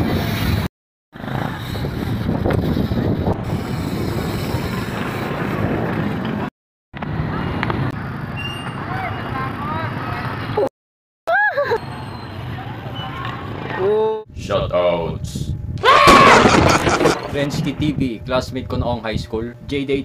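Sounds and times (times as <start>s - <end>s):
outdoor background noise: 0.0s - 10.7s, 11.3s - 20.0s.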